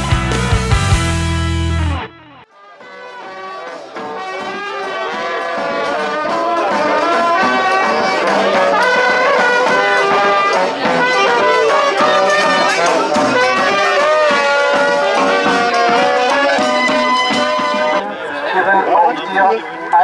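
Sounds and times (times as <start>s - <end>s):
brass band with sousaphone: 0.0s - 20.0s
intro music: 0.0s - 20.0s.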